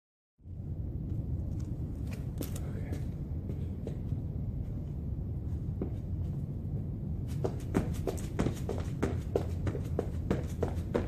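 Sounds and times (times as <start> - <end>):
wind rumble on microphone: 0.4 - 11.0
footsteps on concrete: 7.3 - 11.0.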